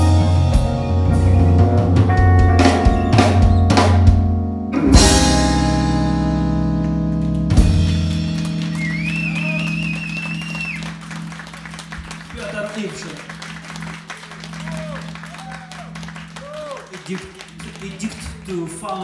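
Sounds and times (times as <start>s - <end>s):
drum hits: 0.0s - 6.5s
jazz band playing: 0.0s - 19.0s.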